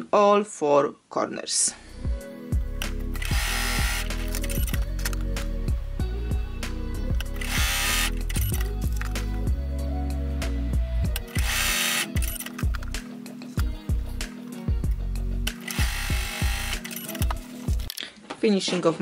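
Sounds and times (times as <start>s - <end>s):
background music: 1.6s - 19.0s.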